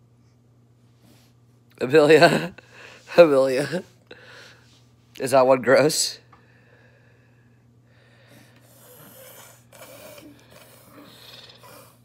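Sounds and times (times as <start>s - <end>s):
baby snuffling through nose: 8.6s - 12.0s.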